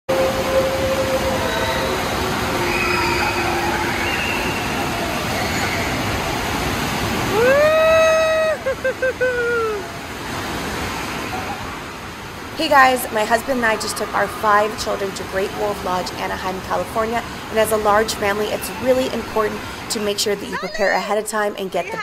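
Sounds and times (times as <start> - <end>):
water rushing in pool: 0.1 - 22.0
children's voices echoing: 12.6 - 22.0.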